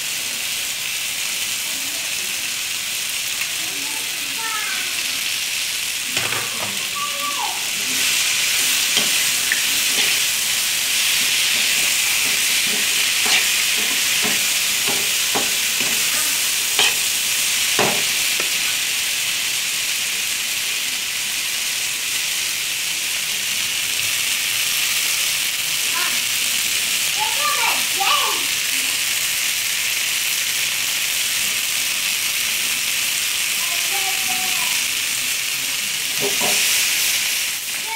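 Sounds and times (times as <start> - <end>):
meat sizzling in frying pan: 0.0 - 37.9
metal spoon scraping pan: 8.0 - 18.8.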